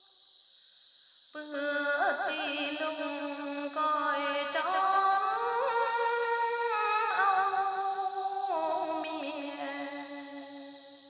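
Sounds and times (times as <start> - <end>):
woman singing with vibrato: 1.4 - 10.8.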